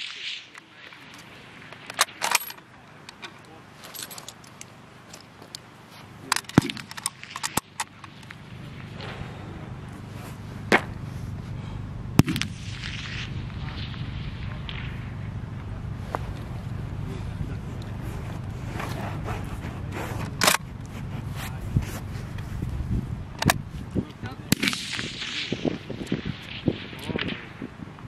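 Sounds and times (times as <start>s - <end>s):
low rumble: 6.7s - 28.0s.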